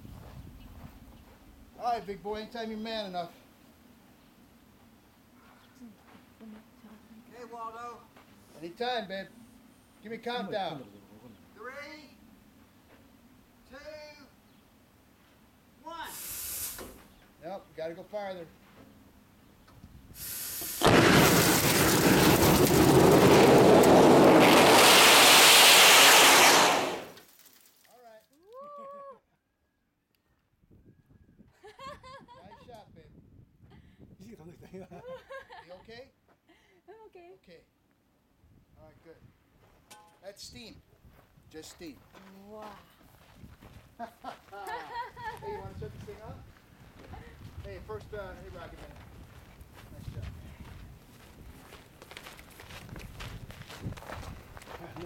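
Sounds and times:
man whooping: 0:28.6 - 0:29.2
footsteps on sandy dirt: 0:41.0 - 0:55.0.

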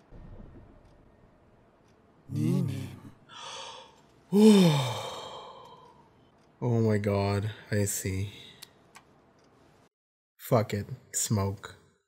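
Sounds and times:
man sighing: 0:02.3 - 0:05.9.

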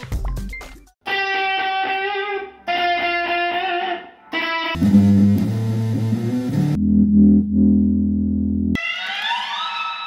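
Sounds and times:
electric guitar notes bending: 0:01.1 - 0:08.8
electric bass note ringing: 0:04.8 - 0:08.8.

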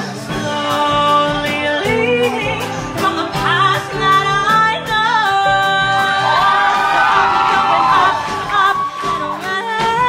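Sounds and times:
live band with drums: 0:00.0 - 0:10.0
woman singing into a microphone: 0:00.0 - 0:10.0.

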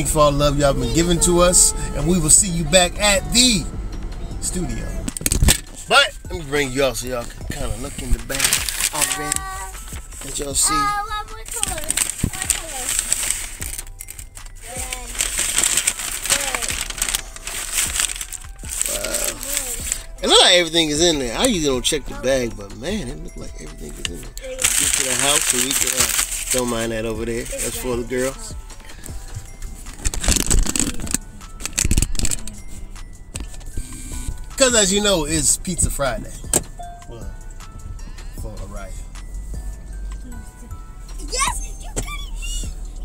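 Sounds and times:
phone handling rustling and scraping: 0:05.0 - 0:05.9, 0:07.2 - 0:10.4, 0:28.8 - 0:34.4
paper bag rustling and crinkling: 0:07.7 - 0:20.7, 0:24.4 - 0:29.0, 0:29.8 - 0:32.5.

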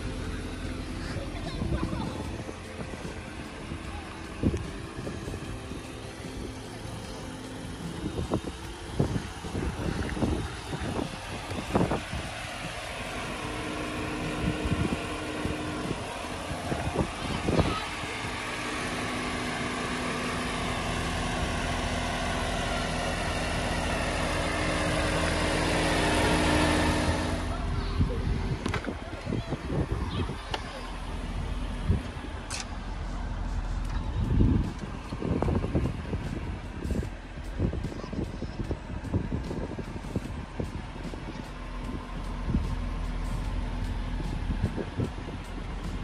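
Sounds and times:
car engine idling: 0:00.0 - 0:46.0.

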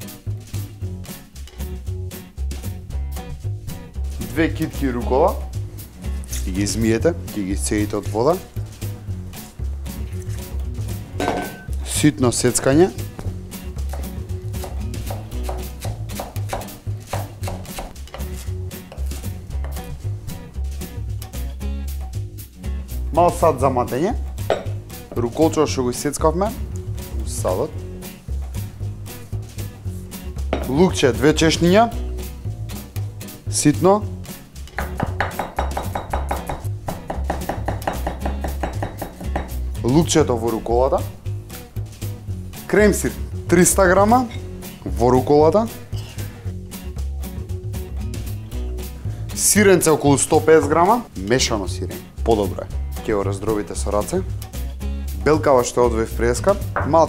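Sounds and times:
background music: 0:00.0 - 0:57.0
knife chopping on wooden board: 0:13.9 - 0:19.9, 0:34.8 - 0:39.6.

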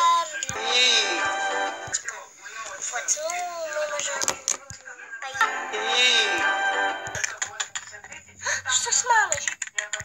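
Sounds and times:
music: 0:00.6 - 0:02.1, 0:05.4 - 0:07.4.

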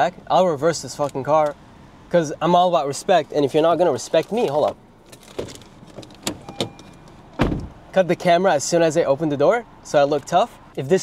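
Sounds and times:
car door opening: 0:04.3 - 0:07.8
car door latch clicks: 0:05.4 - 0:07.8
faint beep: 0:06.4 - 0:07.0.

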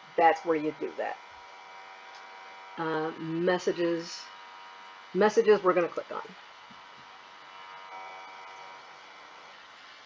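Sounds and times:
electrical hum and hiss: 0:00.0 - 0:10.0
thin steady tones: 0:00.0 - 0:10.0
person speaking: 0:00.2 - 0:01.2, 0:02.8 - 0:04.2.

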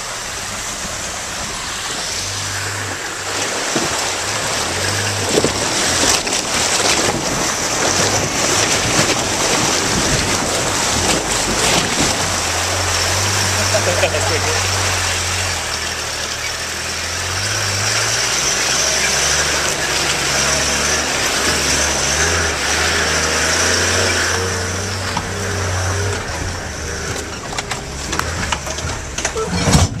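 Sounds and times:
vehicle engine running: 0:00.0 - 0:30.0
vehicle knocks and rattles: 0:03.4 - 0:14.1, 0:18.1 - 0:30.0.

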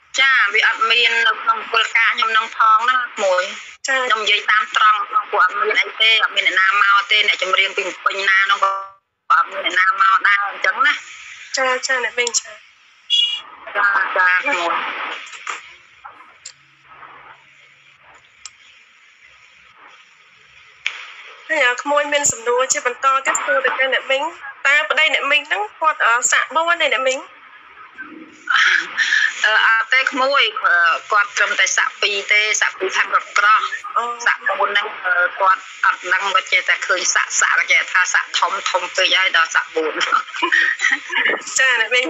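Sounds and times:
room noise and hiss: 0:00.0 - 0:42.0
person talking: 0:00.1 - 0:12.6, 0:13.7 - 0:16.6, 0:21.5 - 0:27.3, 0:27.9 - 0:42.0.

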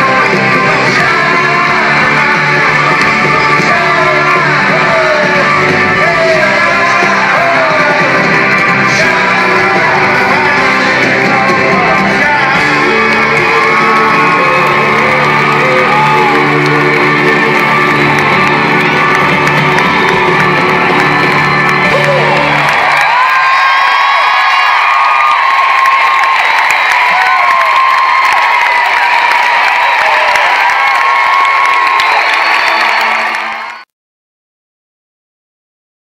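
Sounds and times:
loud live pop music: 0:00.0 - 0:33.8
crowd cheering and whooping: 0:00.0 - 0:33.9.

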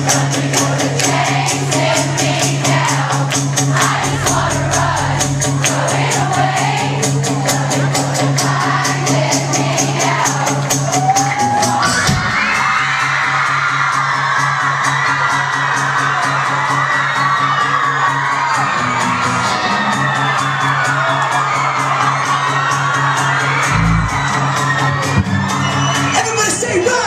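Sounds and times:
crowd screaming and cheering: 0:00.0 - 0:27.0
live rock band playing: 0:23.7 - 0:25.8.

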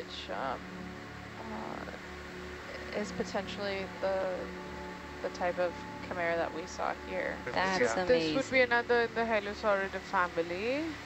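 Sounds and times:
low pulsing throb: 0:00.0 - 0:11.0.

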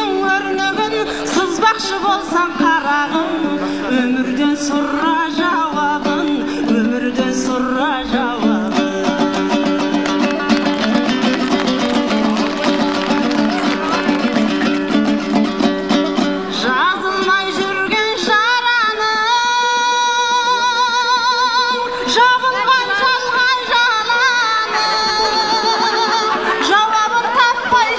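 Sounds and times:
dombra strummed rapidly: 0:00.0 - 0:18.2.

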